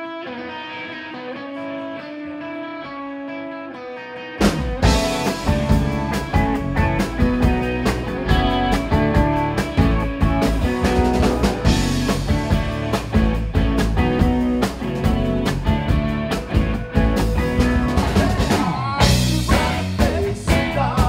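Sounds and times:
rock band playing: 0.0s - 21.0s
drum hits: 4.4s - 16.1s.

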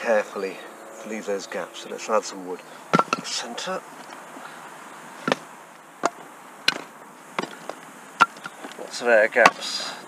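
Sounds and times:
wood pieces knocking on stones: 2.9s - 3.4s, 6.0s - 8.8s.

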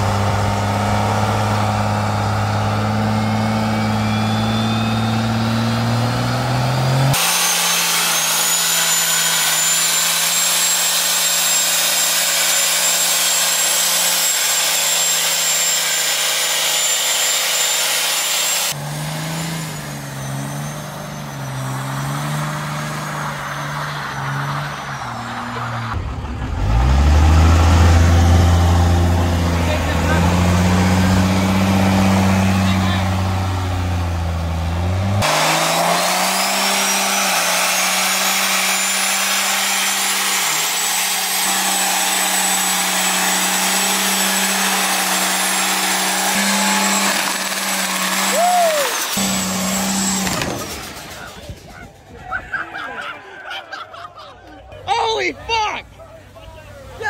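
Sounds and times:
diesel engine revving high: 0.0s - 52.1s
high whistle: 3.2s - 5.8s, 48.3s - 50.2s
tyres spinning on pavement: 36.7s - 55.0s.

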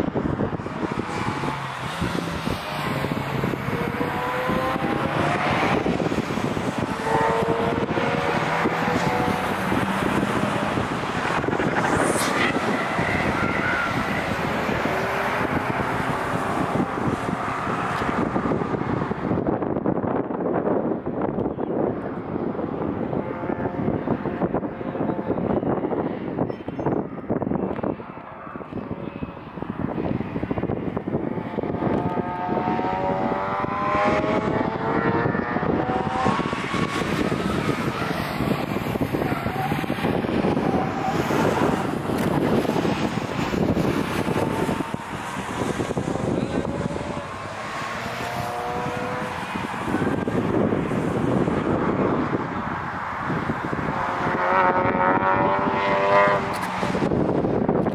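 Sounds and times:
race car engines revving: 0.0s - 57.9s.

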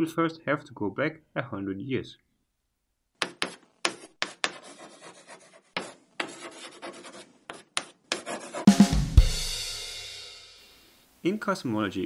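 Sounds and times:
chalk scratching on blackboard: 3.2s - 8.7s.

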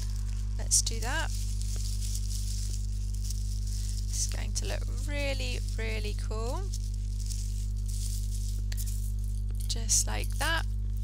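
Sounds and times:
tissue paper rustling: 0.0s - 9.6s
steady low hum: 0.0s - 11.0s.

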